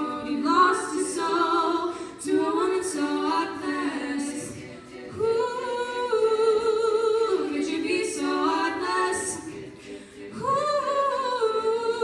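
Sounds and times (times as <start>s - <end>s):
female group singing harmonies: 0.0s - 12.0s.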